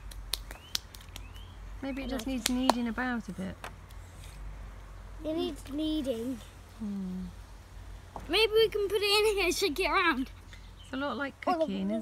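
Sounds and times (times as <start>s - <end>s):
bird chirping: 0.5s - 2.7s, 10.4s - 11.3s
child speaking: 5.2s - 6.6s, 8.3s - 10.4s.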